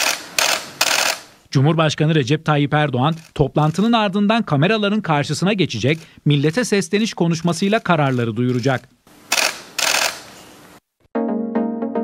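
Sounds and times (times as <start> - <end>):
camera shutters clicking: 0.0 - 1.3, 8.1 - 10.3.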